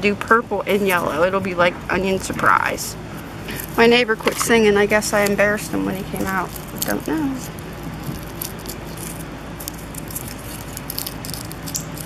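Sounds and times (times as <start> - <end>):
soil crackling and rustling: 3.2 - 12.0.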